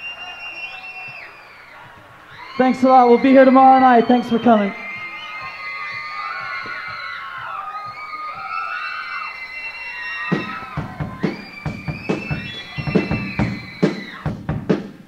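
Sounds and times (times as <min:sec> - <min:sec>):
drum kit steady beat: 0:10.3 - 0:15.0.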